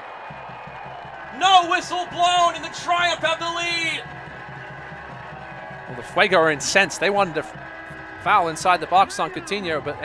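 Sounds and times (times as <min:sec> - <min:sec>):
stadium background noise: 0:00.0 - 0:10.0
music playing: 0:00.4 - 0:10.0.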